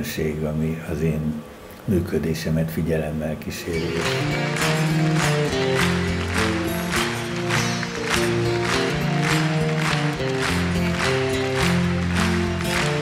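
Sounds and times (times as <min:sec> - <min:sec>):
band music with acoustic guitar: 0:03.7 - 0:13.0.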